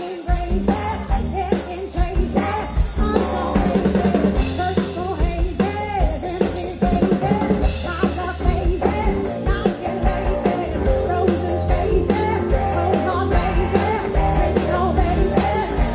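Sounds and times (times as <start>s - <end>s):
blues-rock band playing: 0.0s - 15.9s
drum kit: 0.0s - 15.9s
electric guitar: 0.0s - 15.9s
person singing: 0.0s - 15.9s.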